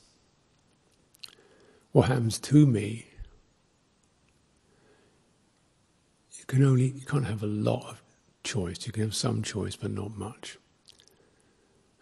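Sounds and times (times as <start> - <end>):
mouth clicks: 1.1 - 1.7, 10.8 - 11.2
person speaking: 1.9 - 3.3, 6.4 - 10.6.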